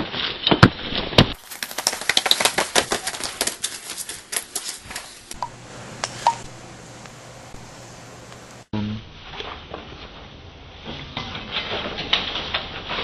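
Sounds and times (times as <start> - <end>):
low steady hum: 4.8 - 11.1.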